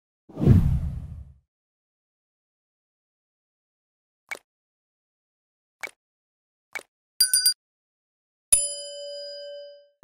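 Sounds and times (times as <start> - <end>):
whoosh with low rumble: 0.3 - 1.4.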